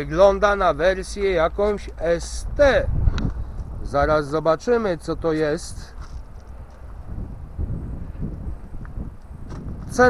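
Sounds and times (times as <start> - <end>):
wind on microphone: 0.9 - 10.0.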